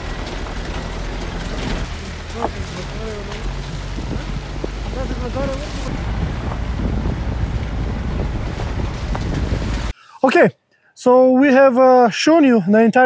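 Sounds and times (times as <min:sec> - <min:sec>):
wind buffeting microphone: 0:00.0 - 0:09.9
faint voices: 0:02.2 - 0:05.9.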